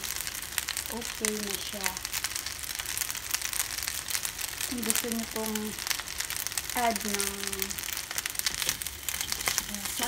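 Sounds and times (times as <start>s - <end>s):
pasta sizzling in a hot pan: 0.0s - 10.0s.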